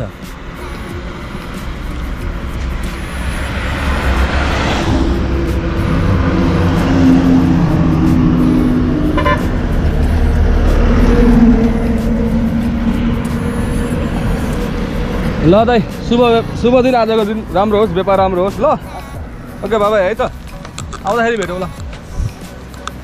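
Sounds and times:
vehicle horns: 0.0 - 20.8
highway traffic passing: 0.0 - 23.0.

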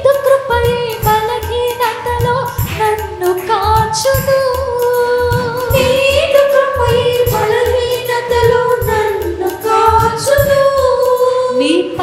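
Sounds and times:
worship song with instruments: 0.0 - 12.0.

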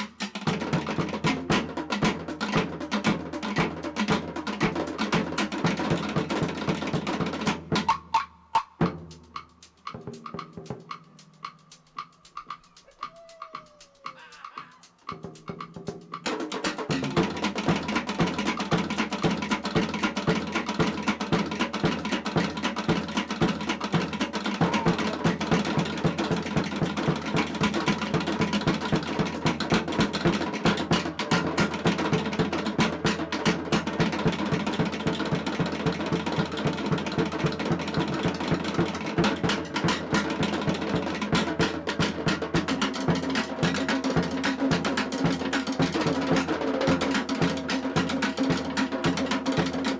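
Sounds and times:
fast drumming by drum ensemble: 0.0 - 49.9.

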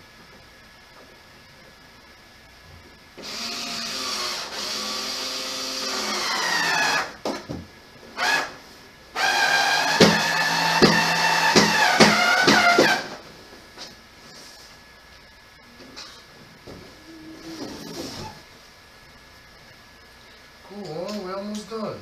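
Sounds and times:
power drill driving screws: 3.2 - 7.2, 9.2 - 13.2.

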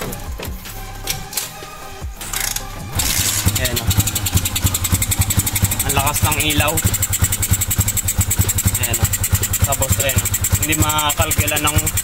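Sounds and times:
motorcycle engine idling: 3.0 - 12.0.

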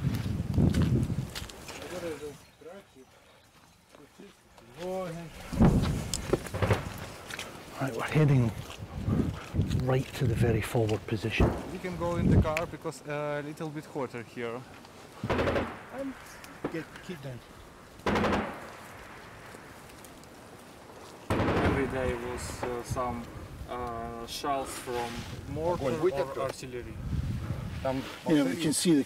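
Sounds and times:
footsteps in dry undergrowth: 0.0 - 13.0, 13.6 - 15.2, 16.5 - 21.3
footsteps on wooden boards: 0.1 - 1.9, 4.6 - 7.6.

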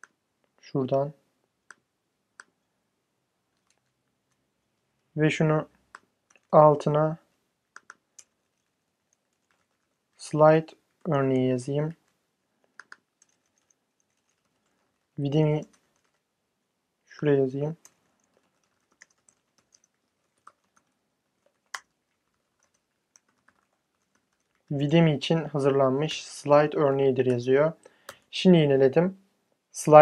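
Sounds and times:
computer keyboard typing: 3.5 - 4.4, 7.7 - 9.9, 11.9 - 16.2, 17.7 - 24.7.

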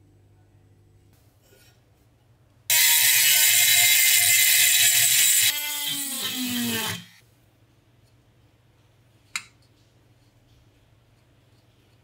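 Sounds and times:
electric power tool running: 2.7 - 7.2.

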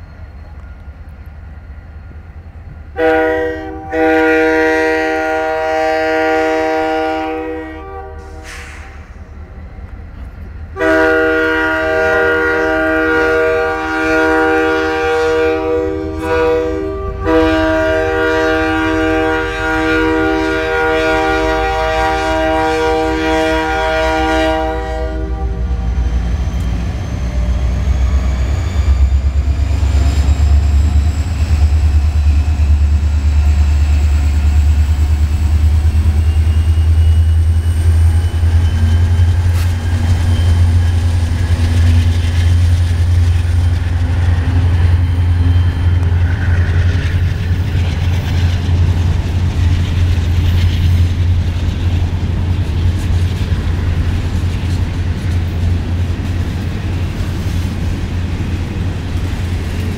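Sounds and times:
low diesel locomotive rumble: 0.0 - 59.9
multi-note train air horn: 3.0 - 9.2, 10.7 - 25.9.

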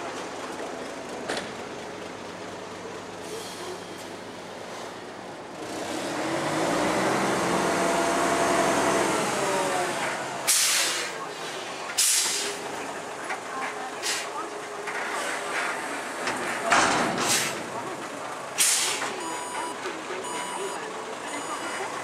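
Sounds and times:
diesel truck engine revving: 5.4 - 13.3, 14.0 - 22.0
air hiss bursts: 10.5 - 11.1, 12.0 - 12.6, 18.6 - 19.0.

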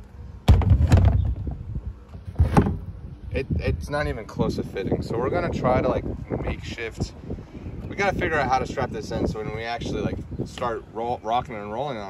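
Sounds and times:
loud thump: 0.4 - 1.6, 2.3 - 2.9
low rumble with knocks: 0.4 - 3.0.

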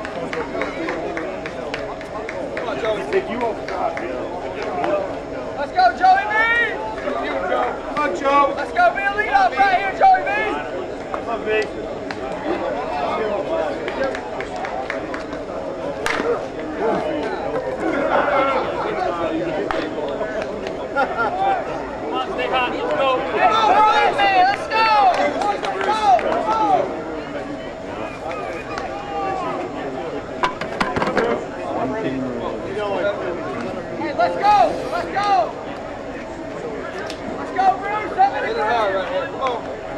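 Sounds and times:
hand claps: 0.0 - 5.0, 13.8 - 16.7, 24.5 - 26.6
chatter and calls of people: 0.0 - 39.9
bat cracking a ball: 16.0 - 16.4, 30.4 - 31.4.

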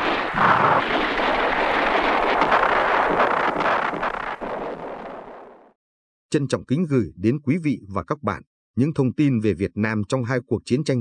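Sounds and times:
sharp cracks: 0.0 - 5.8.

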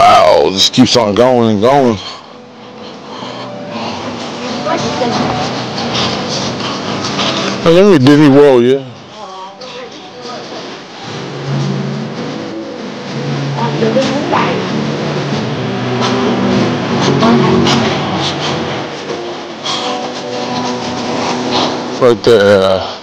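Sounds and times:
people talking indistinctly: 0.0 - 10.8, 13.6 - 14.8, 19.6 - 23.0
steady background hum: 0.0 - 23.0.

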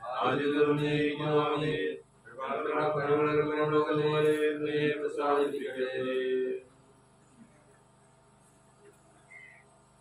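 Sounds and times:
priest chanting: 0.0 - 6.7.

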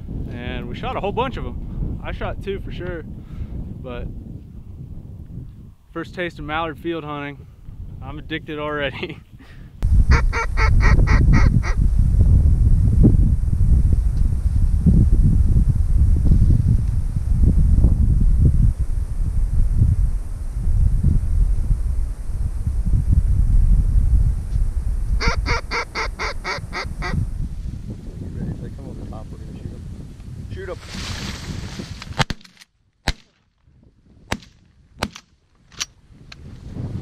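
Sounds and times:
gusty wind rumble on microphone: 0.0 - 32.3, 33.6 - 37.0
goose honks: 25.2 - 27.2.

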